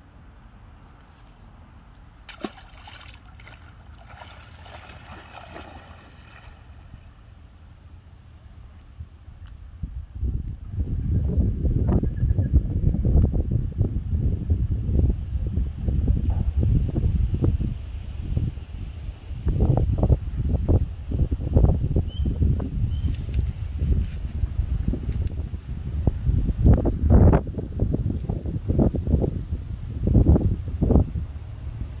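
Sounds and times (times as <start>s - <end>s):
wind buffeting microphone: 8.5s - 32.0s.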